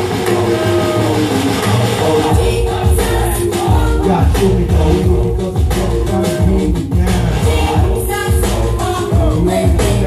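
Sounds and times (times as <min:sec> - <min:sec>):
amplified backing music with bass: 0:00.0 - 0:10.0
man singing into a microphone: 0:00.1 - 0:02.7, 0:03.9 - 0:07.8.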